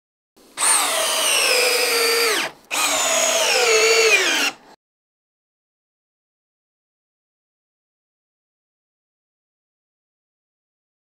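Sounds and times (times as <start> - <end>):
cordless drill motor whining: 0.6 - 4.6.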